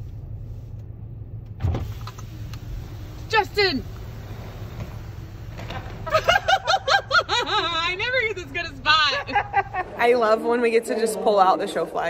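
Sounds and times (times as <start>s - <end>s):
idling car hum: 0.0s - 10.8s
woman giggling: 6.1s - 10.1s.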